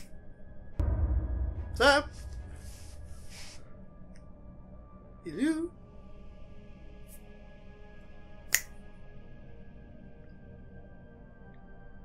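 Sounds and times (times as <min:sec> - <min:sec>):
ambient music drone: 0:00.0 - 0:12.0
finger snap: 0:08.5 - 0:08.8.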